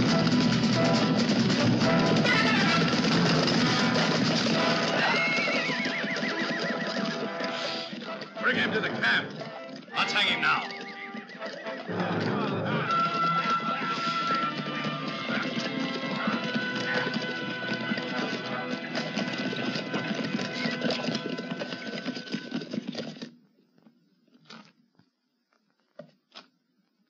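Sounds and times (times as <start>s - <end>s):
film score music: 0.0s - 21.8s
horses neighing: 0.0s - 23.3s
horse hoofbeats galloping: 0.0s - 23.4s.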